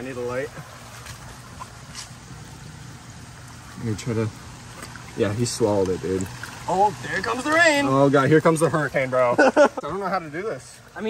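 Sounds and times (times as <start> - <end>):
low steady hum: 0.0 - 11.0
small water splashes: 0.0 - 11.0
water lapping and dripping: 0.0 - 11.0.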